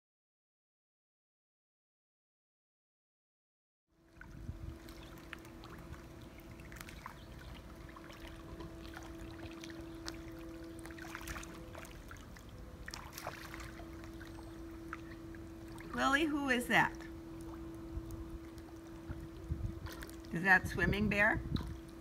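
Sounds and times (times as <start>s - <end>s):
pool water lapping and splashing: 4.0s - 22.0s
steady hum: 4.0s - 22.0s.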